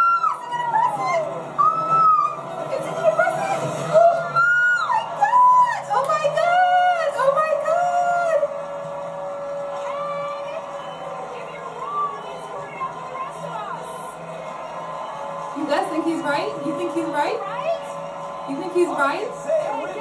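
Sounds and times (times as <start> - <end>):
background music: 0.0 - 20.0
people cheering and whooping: 0.0 - 20.0.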